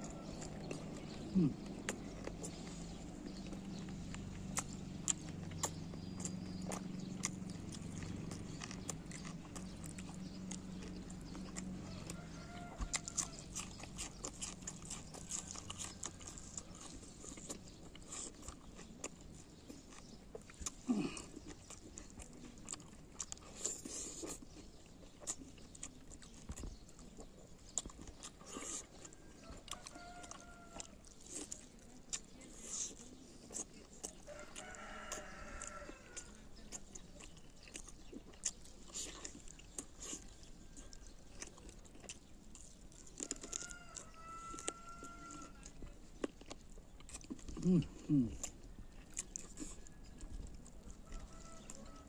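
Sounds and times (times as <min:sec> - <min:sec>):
man chewing food: 0:00.0 - 0:52.0.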